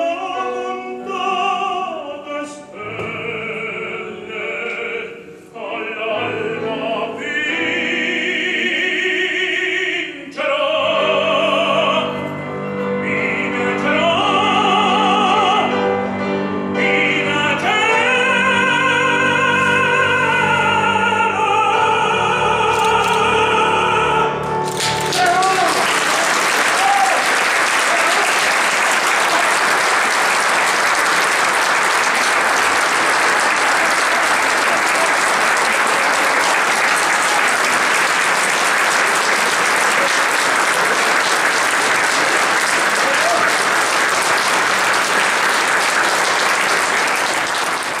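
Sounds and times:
audience applauding: 0:22.7 - 0:23.2, 0:24.6 - 0:48.0.

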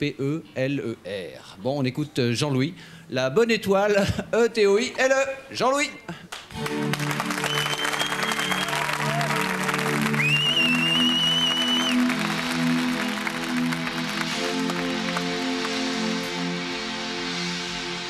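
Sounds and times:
audience applause: 0:06.3 - 0:16.2
high whistles: 0:07.3 - 0:09.4, 0:10.0 - 0:13.6.

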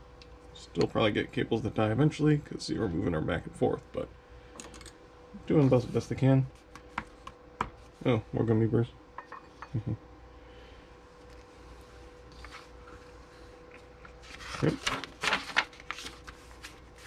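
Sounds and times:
faint steady hum: 0:00.0 - 0:17.0
paper pages turning: 0:14.0 - 0:17.0.

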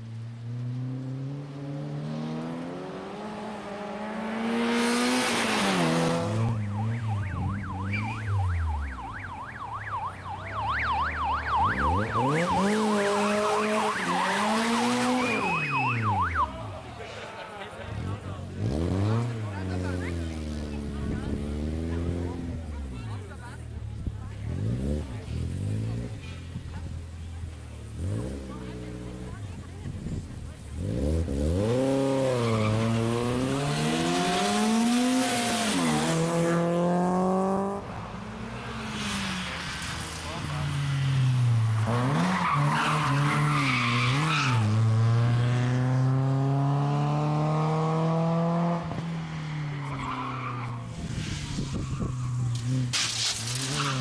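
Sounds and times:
rally car engine revving: 0:00.4 - 0:09.1, 0:11.4 - 0:54.0
tyre noise hiss: 0:50.9 - 0:54.0.

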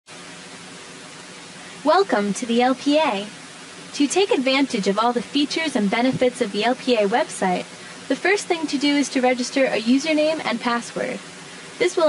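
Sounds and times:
background hiss: 0:00.1 - 0:12.0
person speaking: 0:01.7 - 0:11.2, 0:11.8 - 0:12.0.

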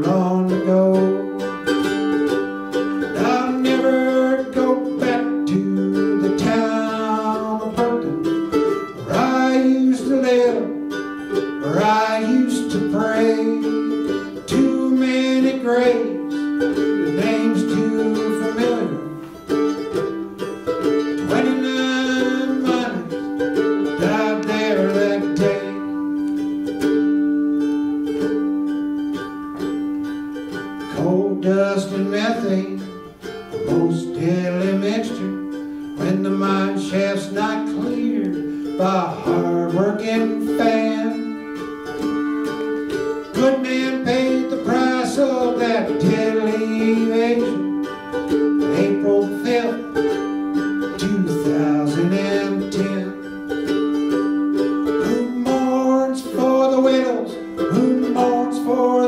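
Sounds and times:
person singing: 0:00.0 - 0:59.0
small stringed instrument playing: 0:00.0 - 0:59.0.

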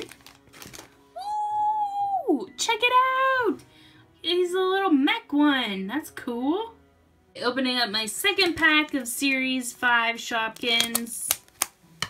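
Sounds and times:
packet rustling: 0:00.0 - 0:01.2, 0:10.5 - 0:11.8
woman's excited woo: 0:01.2 - 0:02.5.

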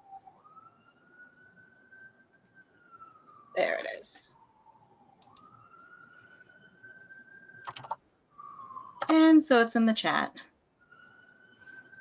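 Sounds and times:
computer keyboard clicks: 0:05.2 - 0:05.5, 0:07.6 - 0:08.0.

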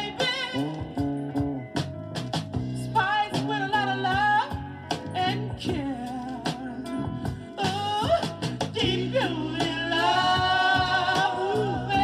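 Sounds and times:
bass and backing band: 0:00.0 - 0:12.0.

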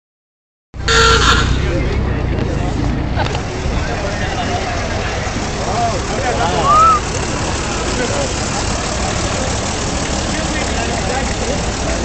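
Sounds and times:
car engine running: 0:00.8 - 0:12.0.

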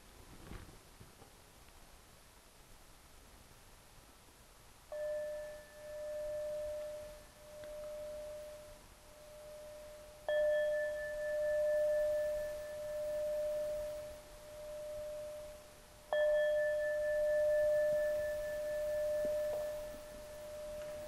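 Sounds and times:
singing bowl struck and ringing: 0:04.9 - 0:21.0.

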